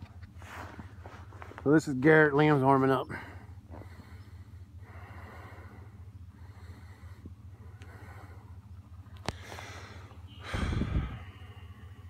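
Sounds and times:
low steady rumble: 0:00.0 - 0:12.0
person breathing softly: 0:03.1 - 0:12.0.

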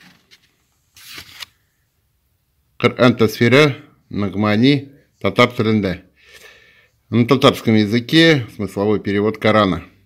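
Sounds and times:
book pages rustling: 0:00.0 - 0:01.7.

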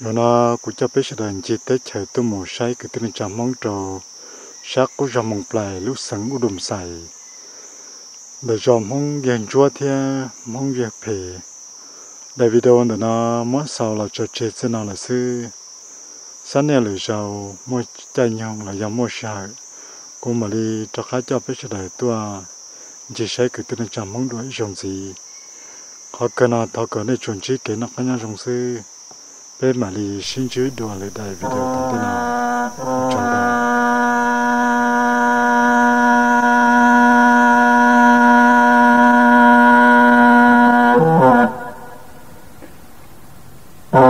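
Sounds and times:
insect chorus: 0:00.0 - 0:44.0
man talking: 0:29.6 - 0:33.8.

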